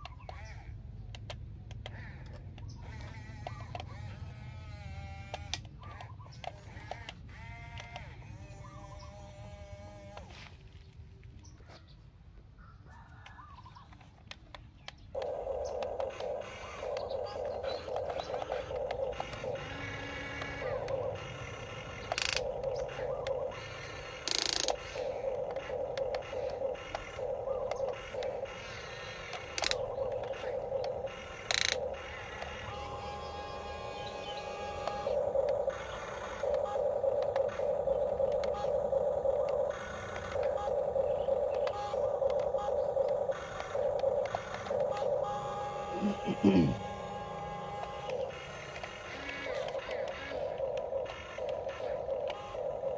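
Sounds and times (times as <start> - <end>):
sharp clicks: 0.0 - 4.2, 5.2 - 8.2, 13.2 - 52.9
small electric motors whining: 0.0 - 10.8, 15.1 - 52.9.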